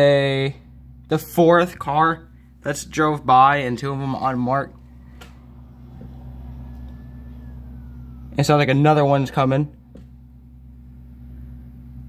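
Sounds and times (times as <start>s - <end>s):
steady low hum: 0.0s - 12.0s
distant siren falling in pitch: 2.9s - 12.0s.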